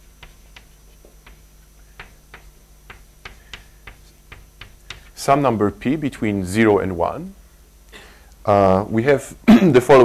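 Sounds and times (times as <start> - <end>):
chalk tapping on blackboard: 0.0 - 5.3.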